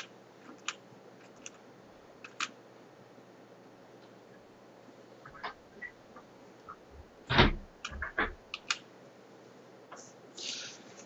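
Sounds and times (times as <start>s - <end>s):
keyboard keystrokes clicking: 0.0s - 1.6s, 2.2s - 2.6s, 7.8s - 8.8s.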